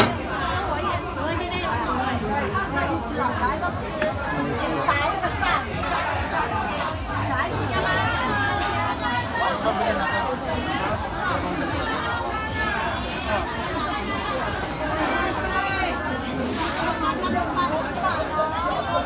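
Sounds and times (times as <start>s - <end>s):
market crowd chatter: 0.0s - 19.0s.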